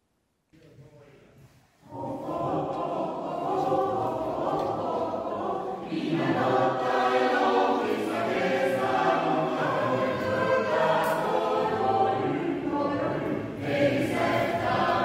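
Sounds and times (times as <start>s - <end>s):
choir singing: 1.8s - 15.0s.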